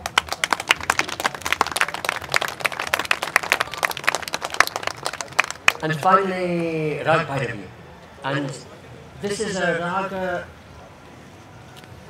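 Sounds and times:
audience clapping: 0.0s - 6.1s.

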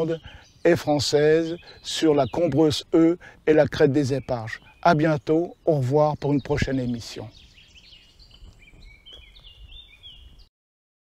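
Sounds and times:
songbird singing: 0.0s - 10.5s.

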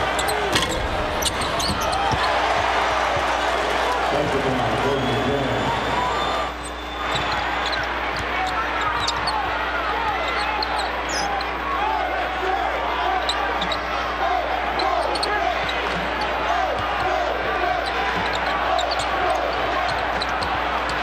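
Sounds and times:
sneaker squeaks: 0.0s - 2.3s, 4.9s - 11.6s, 13.2s - 13.9s, 14.7s - 16.9s, 17.7s - 21.0s
arena crowd noise: 0.0s - 21.0s.

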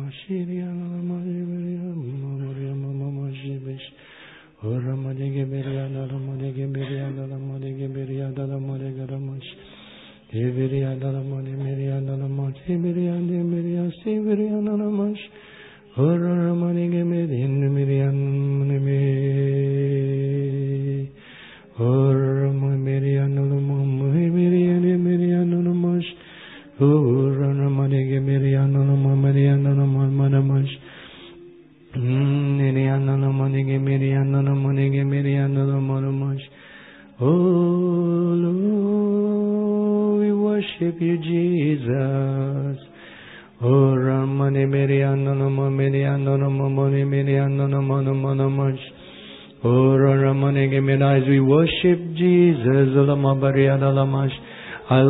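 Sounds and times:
quick breath: 4.0s - 4.6s, 21.2s - 21.7s, 26.2s - 26.7s, 30.8s - 31.4s, 36.6s - 37.2s, 43.0s - 43.6s, 49.0s - 49.6s, 54.4s - 54.9s.

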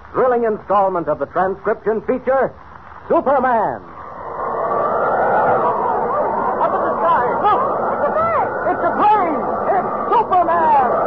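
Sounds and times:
rushing wind whoosh: 3.8s - 11.0s.

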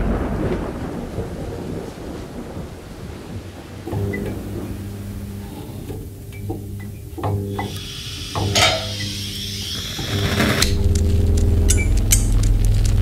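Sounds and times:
deep boom rumbling: 0.0s - 6.8s, 10.7s - 13.0s
noisy hiss: 3.6s - 13.0s
low steady hum: 3.9s - 13.0s.

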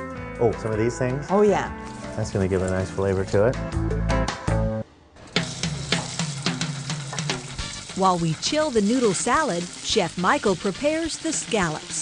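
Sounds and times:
music with steady drum beat: 5.4s - 12.0s.

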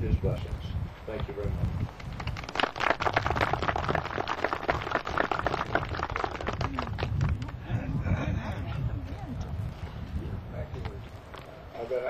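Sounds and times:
audience applauding: 2.1s - 7.6s.

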